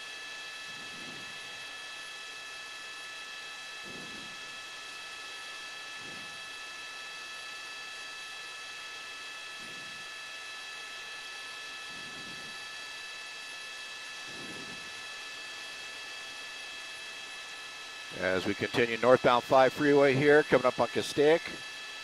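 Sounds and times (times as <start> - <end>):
helicopter cabin noise: 14.3 - 15.0, 18.1 - 21.9.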